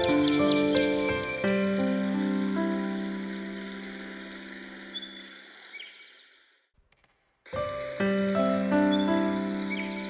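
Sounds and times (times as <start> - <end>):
forest ambience hiss: 0.0 - 6.5, 7.6 - 10.0.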